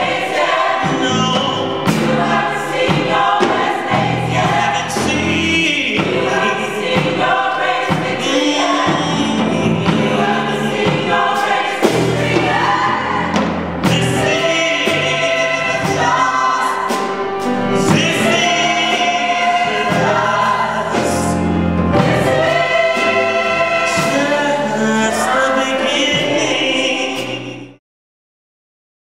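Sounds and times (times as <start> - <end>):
gospel choir singing: 0.0 - 27.8.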